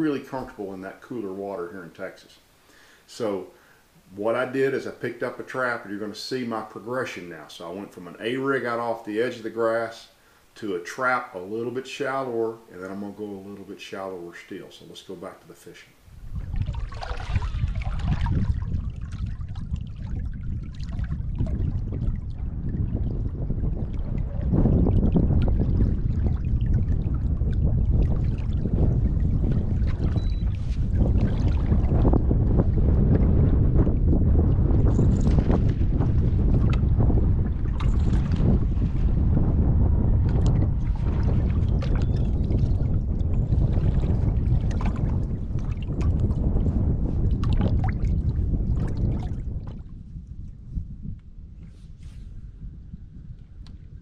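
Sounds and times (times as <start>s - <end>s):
wind buffeting microphone: 16.0s - 54.0s
waves slapping boat hull: 16.2s - 34.5s, 35.2s - 49.9s.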